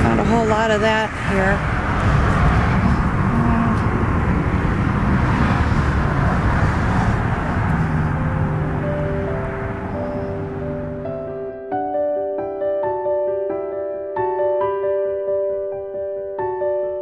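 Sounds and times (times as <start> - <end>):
freeway traffic drone: 0.0 - 11.7
background music with held notes: 8.8 - 17.0.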